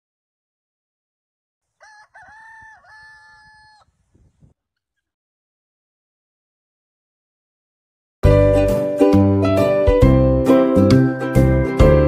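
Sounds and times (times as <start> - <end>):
rooster crowing: 1.7 - 4.0.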